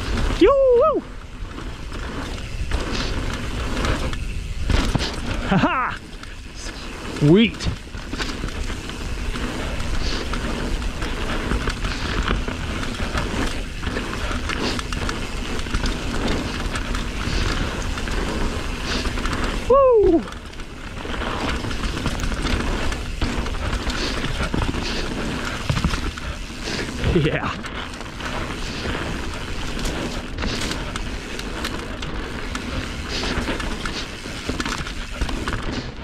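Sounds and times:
bike tyre and trail rattle: 0.0s - 36.0s
rider whooping: 0.1s - 1.5s, 4.7s - 7.4s, 13.0s - 25.6s.

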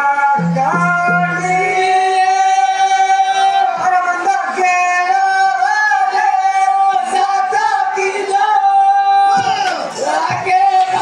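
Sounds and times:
person singing long note: 0.0s - 3.9s.

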